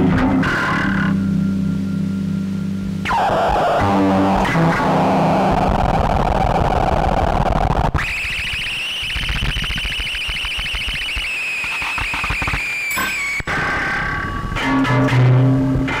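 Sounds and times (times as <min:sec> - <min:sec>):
dense distorted noise: 0:00.0 - 0:16.0
fast crackle: 0:03.0 - 0:14.3
high-pitched tone: 0:08.0 - 0:16.0.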